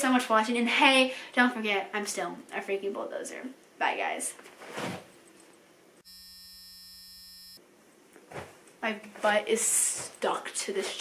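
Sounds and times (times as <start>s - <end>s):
low electronic buzz: 6.0s - 7.6s.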